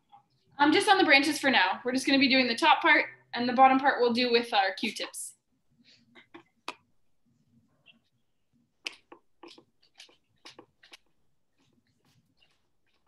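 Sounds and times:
paper towel dabbing on canvas: 0:08.8 - 0:13.0.

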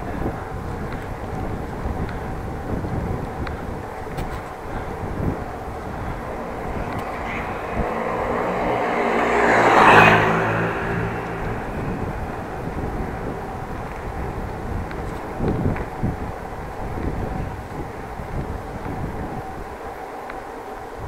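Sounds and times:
bicycle ride rumble and wind: 0:00.0 - 0:21.0
motor vehicle passing: 0:03.1 - 0:15.9.

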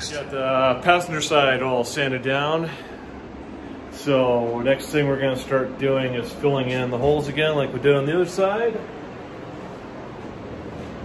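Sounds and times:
drum fan rushing air: 0:00.0 - 0:11.0.

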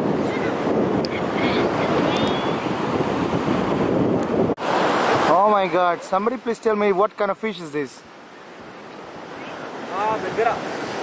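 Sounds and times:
sea surf washing onto beach: 0:00.0 - 0:11.0.

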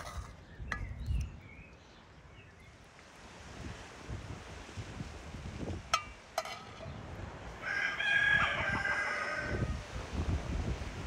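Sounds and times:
rooster crowing: 0:07.6 - 0:09.9.

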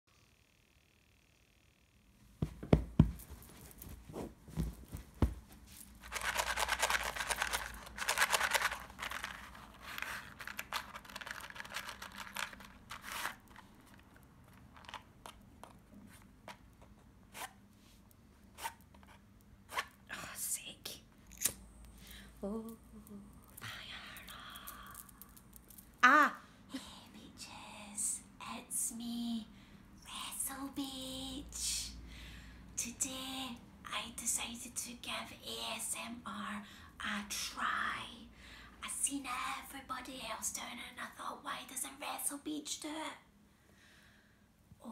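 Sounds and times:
heavy thumps on cardboard box: 0:02.4 - 0:03.3.

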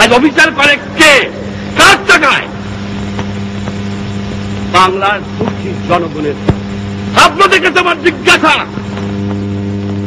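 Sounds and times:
low electrical hum: 0:00.0 - 0:10.0
recording hiss: 0:00.0 - 0:10.0
man shouting over microphones: 0:00.1 - 0:02.6.

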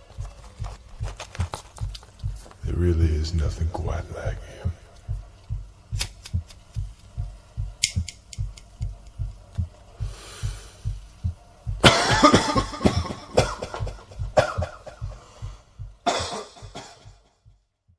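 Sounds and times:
low thumping pulse: 0:00.0 - 0:17.9
sharp clicks: 0:07.8 - 0:09.8
man coughing hard: 0:11.8 - 0:15.0, 0:16.0 - 0:17.2.

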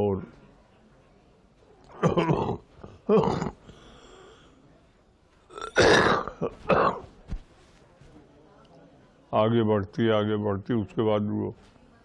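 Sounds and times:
old man coughing: 0:02.0 - 0:03.6, 0:05.6 - 0:07.1.

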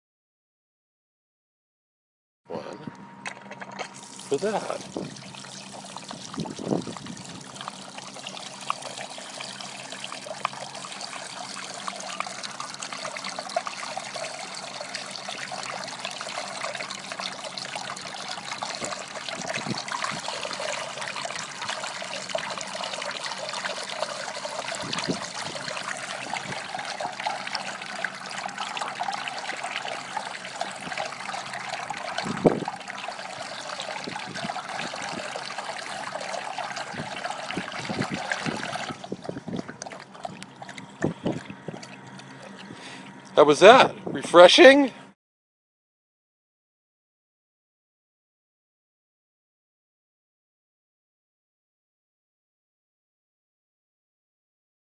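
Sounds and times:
dog drinking: 0:03.5 - 0:43.4
water running from fountain: 0:03.5 - 0:44.9.

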